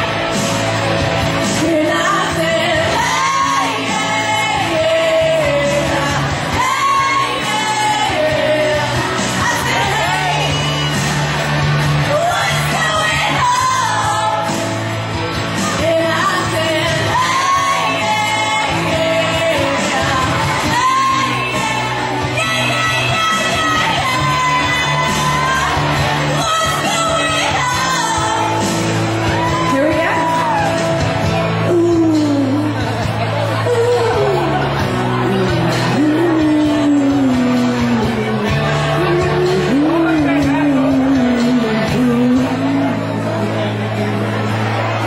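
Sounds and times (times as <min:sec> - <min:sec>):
person singing karaoke: 0:00.0 - 0:45.0
pop backing track: 0:00.0 - 0:45.0.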